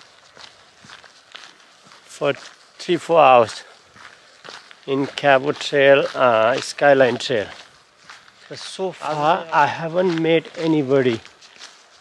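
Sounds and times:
footsteps on hiking trail: 0.0 - 12.0.

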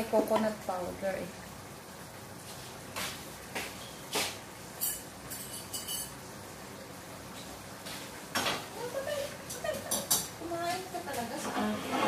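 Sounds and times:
utensils clinking against cookware: 4.8 - 6.2.

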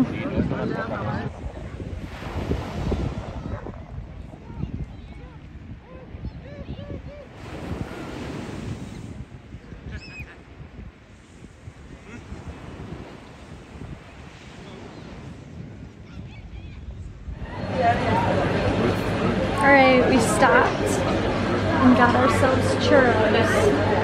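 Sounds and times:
waves washing onto beach: 0.0 - 24.0.

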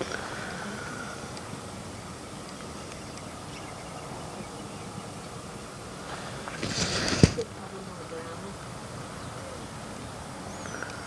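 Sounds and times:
outdoor background noise: 0.0 - 11.0
brief hissy burst: 6.5 - 7.4.

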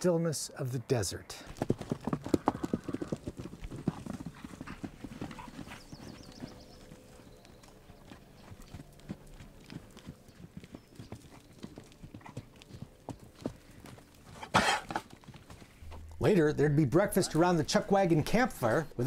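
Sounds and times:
horse hooves trotting on dirt: 1.5 - 19.0.

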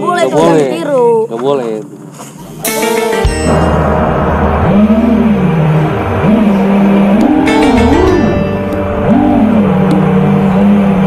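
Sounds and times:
background music: 2.6 - 4.8, 7.2 - 10.6
drone motors whining: 3.5 - 11.0.

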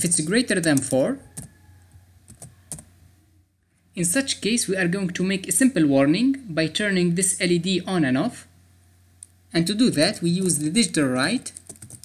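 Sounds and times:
computer keyboard keystrokes: 2.3 - 2.8, 11.5 - 12.0.

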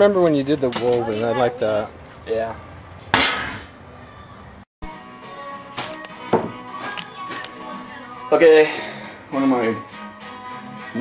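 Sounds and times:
background music: 4.8 - 11.0
things knocked down on counter: 6.3 - 6.6.

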